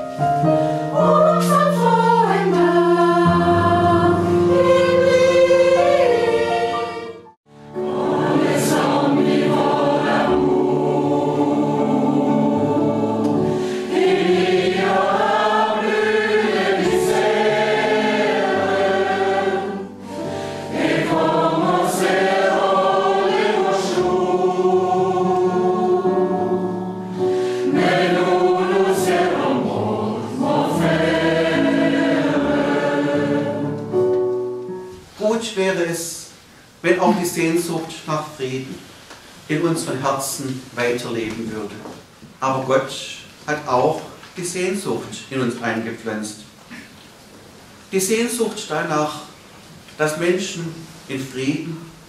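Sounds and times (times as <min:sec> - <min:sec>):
keyboard accompaniment: 0:00.0 - 0:35.2
mixed choir singing a hymn: 0:00.7 - 0:34.2.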